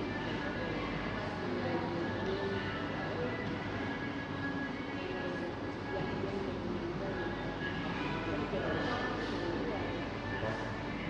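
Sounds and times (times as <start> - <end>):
chatter of many voices: 0.0 - 11.0
faint background music: 0.0 - 11.0.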